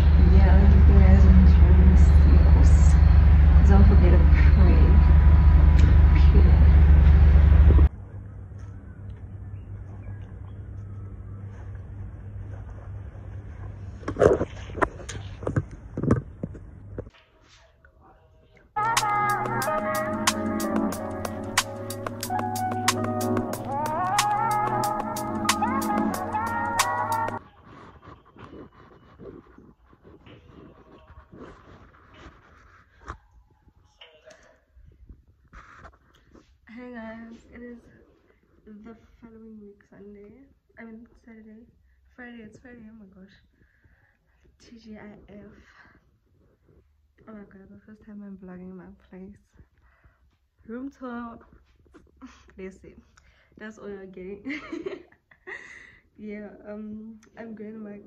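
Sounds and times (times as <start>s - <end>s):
woman speaking: 0.0s - 7.0s, 36.7s - 43.4s, 44.6s - 45.9s, 47.2s - 49.6s, 52.5s - 54.7s, 56.2s - 58.0s
loud steady low hum: 0.0s - 13.7s
fabric rustling on microphone: 10.8s - 17.7s, 27.4s - 34.0s, 34.8s - 38.7s.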